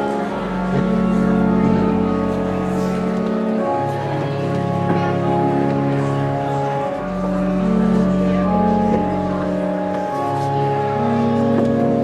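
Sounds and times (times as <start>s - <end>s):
low organ pedal note: 0.0s - 12.0s
pipe organ chords: 0.0s - 12.0s.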